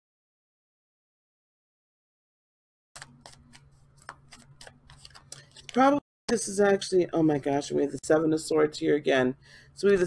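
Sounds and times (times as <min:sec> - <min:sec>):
cards clicking while shuffled: 0:03.0 - 0:06.0.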